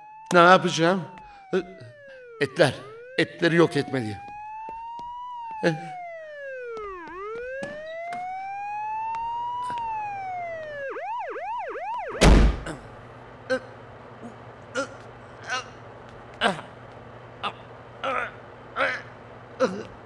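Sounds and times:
police siren wailing: 0.0 - 12.3
heavy thump: 12.2 - 12.7.

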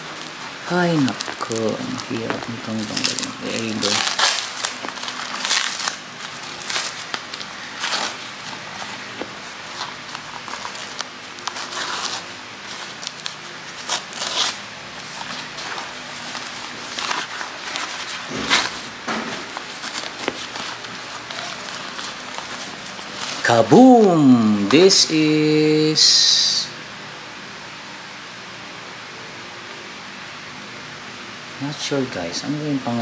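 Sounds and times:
paper crinkling and rustling: 0.0 - 24.0.

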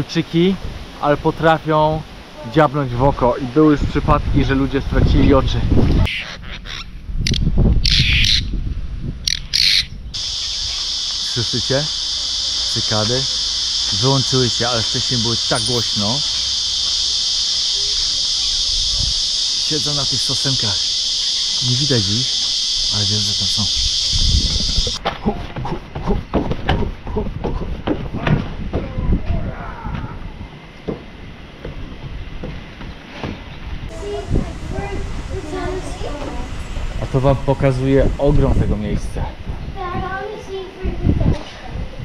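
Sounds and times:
cicadas buzzing: 6.0 - 8.6, 9.2 - 28.2, 33.8 - 40.4
birds squawking: 6.1 - 8.5, 9.3 - 22.9, 23.7 - 25.6
low rumbling noise: 10.0 - 25.0
scattered knocks: 25.0 - 28.8.

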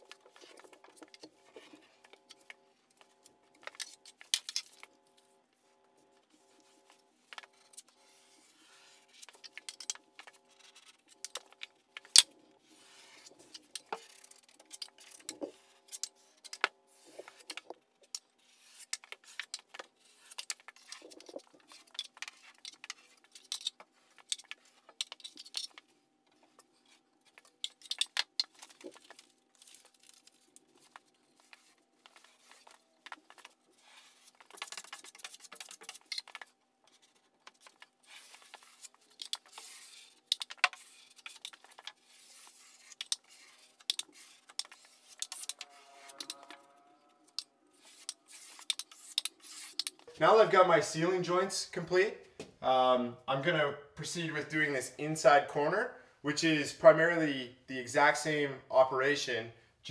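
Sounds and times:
taping knife scraping drywall: 12.1 - 25.8, 26.7 - 50.0.

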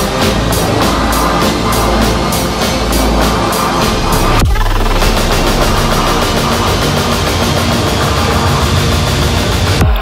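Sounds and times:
dense electronic music: 0.0 - 10.0.

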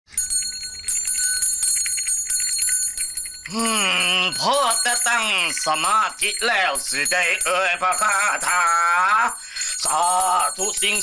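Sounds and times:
brass hand bell ringing: 0.1 - 11.0.

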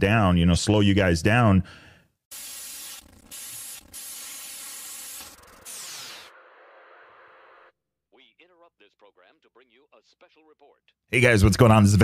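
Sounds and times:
static-like hiss bursts: 2.3 - 7.7.

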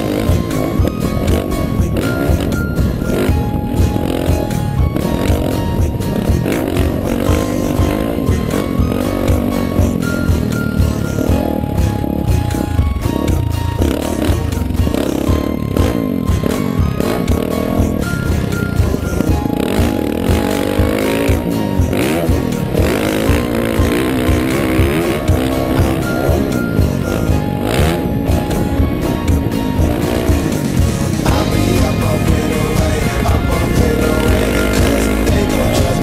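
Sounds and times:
background music with beat: 0.0 - 36.0
motocross bike engine revving: 0.0 - 36.0.

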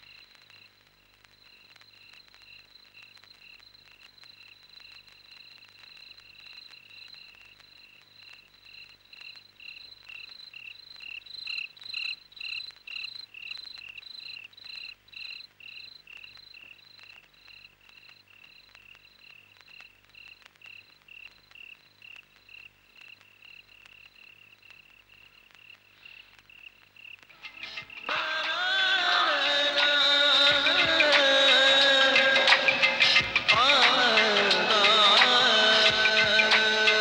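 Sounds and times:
crickets chirping: 0.0 - 37.0.

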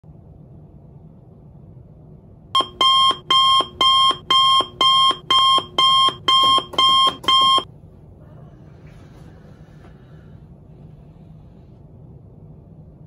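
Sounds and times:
alarm beeping: 2.6 - 7.7.

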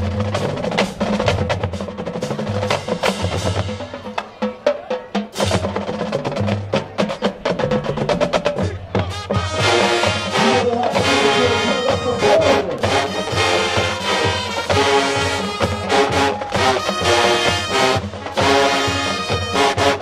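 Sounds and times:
marching band drums: 0.0 - 20.0
brass section playing: 8.9 - 20.0.

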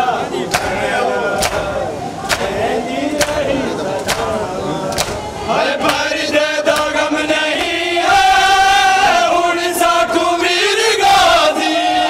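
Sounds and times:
men chanting together: 0.0 - 12.0
hands beating on bare chests: 4.0 - 5.2.

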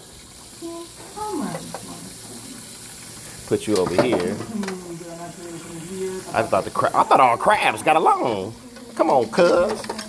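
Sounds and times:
tap water running into sink: 0.0 - 10.0.

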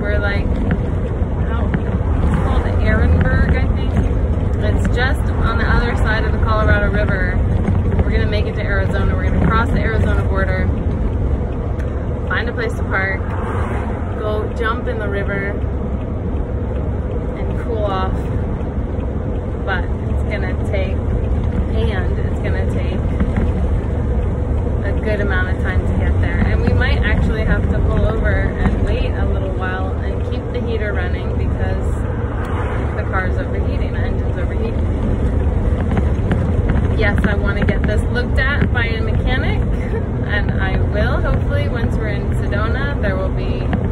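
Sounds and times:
woman talking: 0.0 - 0.6, 1.4 - 10.8, 12.3 - 13.3, 14.2 - 15.6, 17.4 - 18.3, 19.6 - 21.0, 21.6 - 23.2, 24.8 - 32.0, 32.8 - 34.9, 36.9 - 43.8
vehicle engine and road noise: 0.0 - 43.9.

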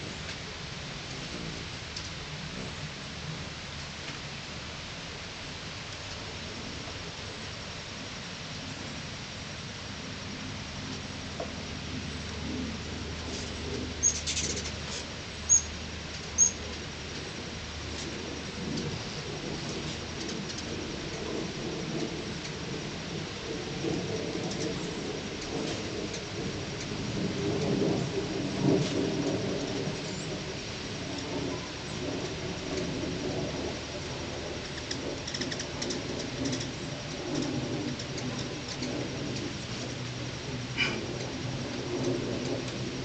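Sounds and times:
hummingbird wings humming: 5.8 - 43.0.

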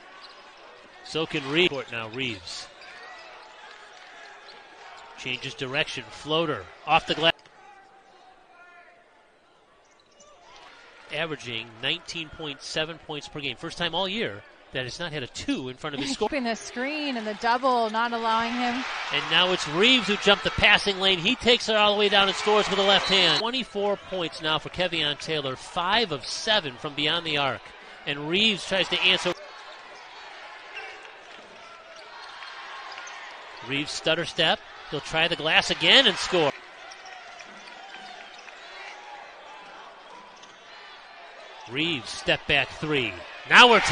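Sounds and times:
arena crowd murmur: 16.0 - 43.9.

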